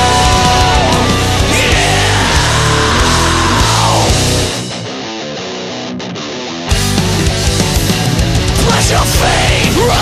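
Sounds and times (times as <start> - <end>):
electric guitar playing alone: 0.0 - 10.0
metalcore band playing: 0.0 - 10.0.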